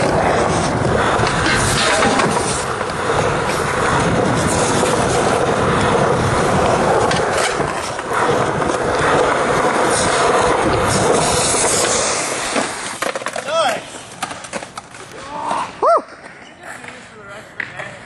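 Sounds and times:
skateboard clacks: 0.0s - 18.0s
skateboard wheels rolling on concrete: 0.0s - 18.0s.

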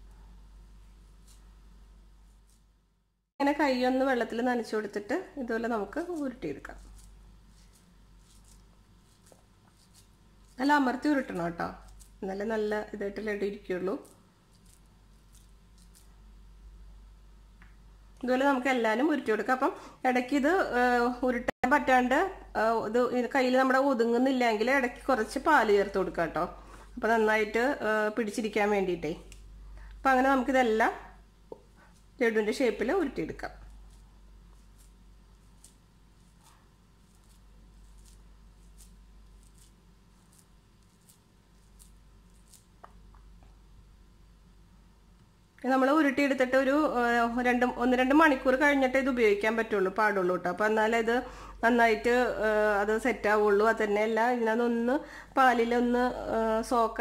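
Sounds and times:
faint rustles of hand squeezing dough: 0.0s - 2.9s, 4.9s - 17.2s, 29.0s - 43.8s.

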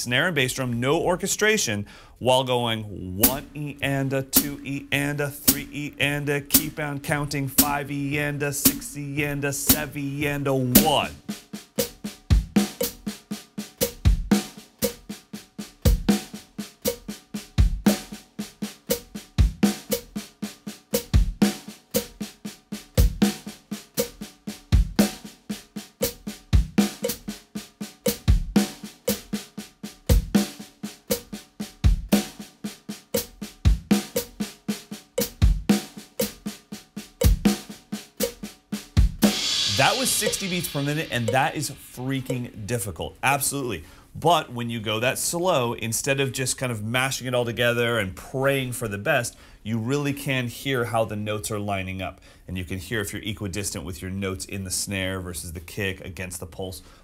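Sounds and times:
bass drum kick: 3.2s - 11.2s, 11.8s - 13.0s, 13.8s - 14.5s, 15.9s - 16.2s, 39.0s - 42.8s
snare drum paradiddles: 3.2s - 44.4s.

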